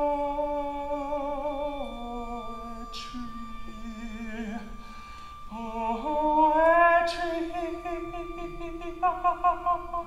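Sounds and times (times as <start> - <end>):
woman singing: 0.0 - 4.8, 5.5 - 10.0.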